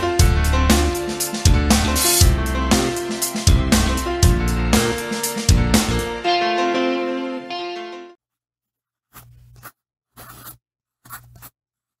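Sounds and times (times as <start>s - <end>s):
guitar music: 0.0s - 8.2s
pen scratching on paper: 9.0s - 11.6s.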